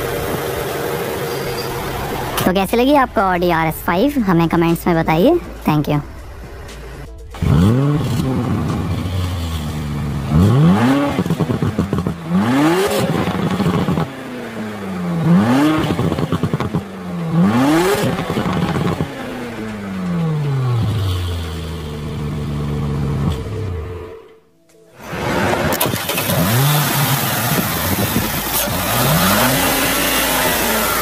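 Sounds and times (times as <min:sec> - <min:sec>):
car engine revving: 0:05.4 - 0:24.4, 0:25.0 - 0:31.0.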